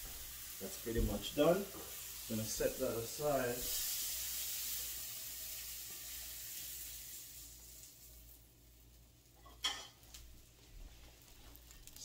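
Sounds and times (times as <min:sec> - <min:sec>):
vegetables sizzling in a frying pan: 0:00.0 - 0:12.0.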